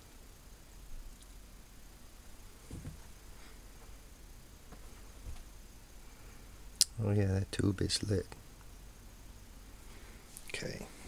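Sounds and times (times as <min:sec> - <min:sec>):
television low hum: 0:00.0 - 0:11.0
soft bumps: 0:02.6 - 0:04.0, 0:04.6 - 0:05.5.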